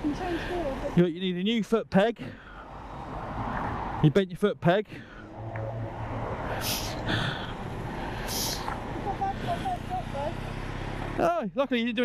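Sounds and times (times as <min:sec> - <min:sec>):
vehicle engine humming: 0:00.0 - 0:12.0
short hissing bursts: 0:06.6 - 0:07.1, 0:08.3 - 0:08.7.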